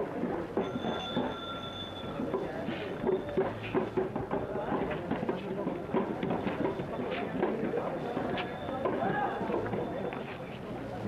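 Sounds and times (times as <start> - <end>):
murmur of street voices: 0.0 - 11.0.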